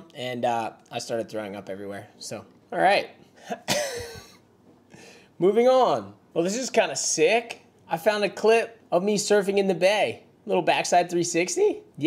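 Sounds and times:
man coughing: 3.4 - 4.4.

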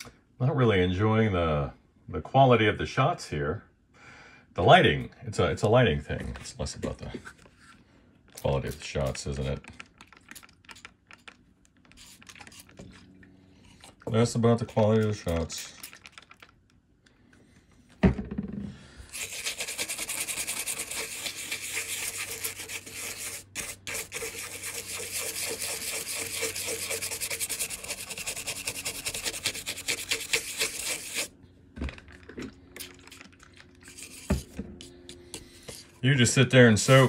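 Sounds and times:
toothbrush scrubbing a board: 8.4 - 13.0, 13.7 - 15.9, 19.1 - 31.3, 32.9 - 35.9, 36.7 - 37.0.

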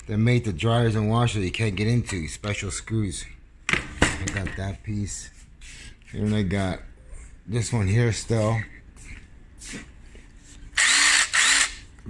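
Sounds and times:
impact driver motor whine: 10.8 - 11.8.

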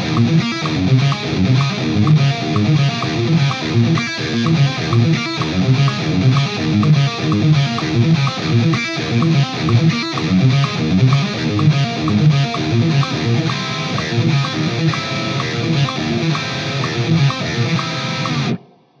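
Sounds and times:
distorted electric guitar riff: 0.0 - 18.7.

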